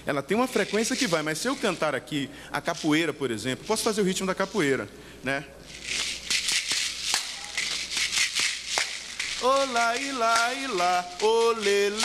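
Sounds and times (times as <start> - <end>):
plastic shakers rattling: 0.0 - 4.8, 5.6 - 12.0.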